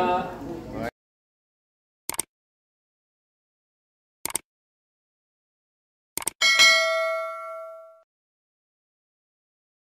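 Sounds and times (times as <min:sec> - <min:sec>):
quick clicks: 0:02.1 - 0:02.3, 0:04.2 - 0:04.4, 0:06.2 - 0:06.4
bright bell ding: 0:06.4 - 0:08.1.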